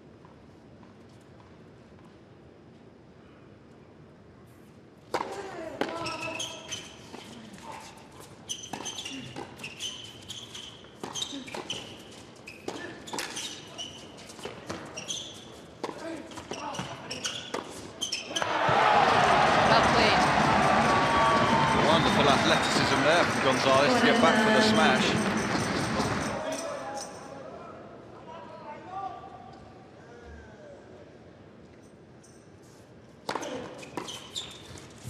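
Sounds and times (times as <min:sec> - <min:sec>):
shoes squeaking on court: 0:05.8 - 0:18.5, 0:32.2 - 0:35.0
crowd cheering and applauding: 0:18.4 - 0:26.4.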